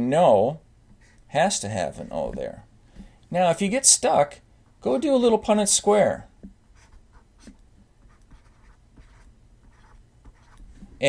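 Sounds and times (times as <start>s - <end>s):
mouse scratching on desk: 6.8s - 10.9s.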